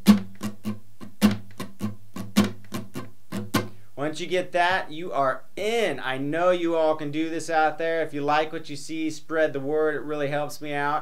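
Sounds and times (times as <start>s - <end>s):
acoustic guitar strumming: 0.0s - 3.9s.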